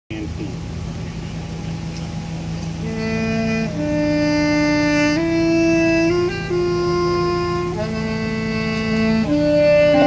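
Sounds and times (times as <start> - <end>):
steady low hum: 0.1 - 10.0
murmur of voices: 7.5 - 10.0.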